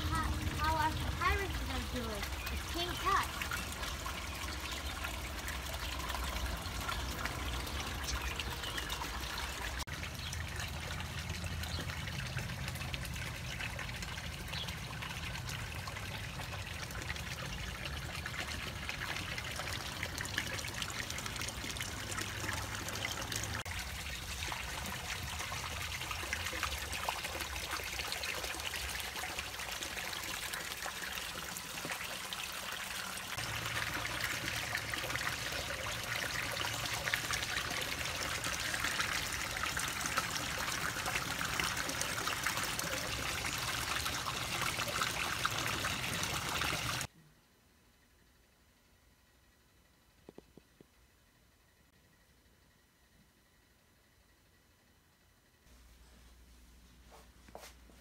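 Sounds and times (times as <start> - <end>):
water trickling in a pond: 0.0 - 47.2.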